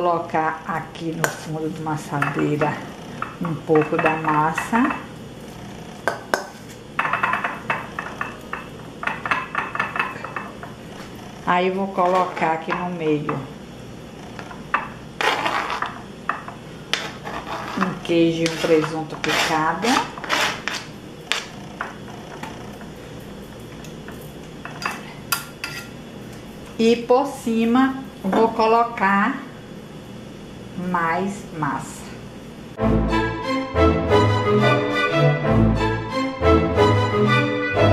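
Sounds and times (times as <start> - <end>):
spoon clinking on metal bowl: 2.2 - 5.0
knife scraping cutting board: 15.2 - 16.0, 16.9 - 22.7.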